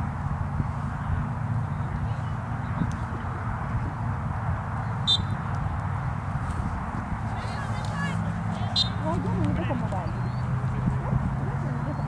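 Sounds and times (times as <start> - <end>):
distant shouts and calls: 4.7 - 12.0.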